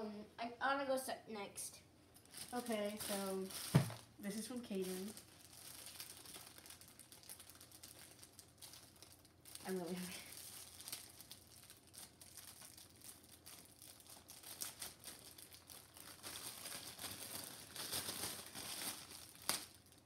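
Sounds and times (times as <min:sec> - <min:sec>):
gift wrapping crinkling and tearing: 0:02.2 - 0:20.0.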